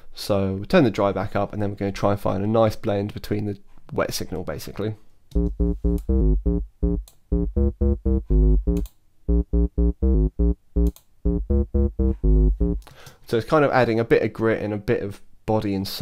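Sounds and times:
staccato synth bass line: 0:05.4 - 0:12.8.

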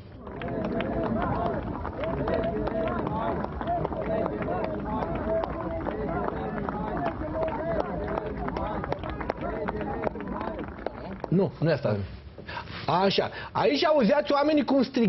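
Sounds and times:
large crowd calling out: 0:00.2 - 0:10.6.

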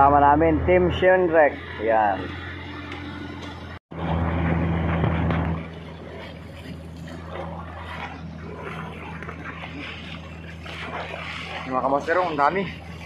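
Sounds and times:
boat engine humming: 0:00.0 - 0:13.0.

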